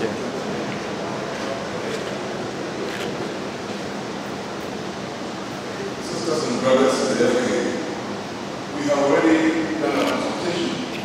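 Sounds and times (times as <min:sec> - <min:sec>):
large hall rushing noise: 0:00.0 - 0:11.0.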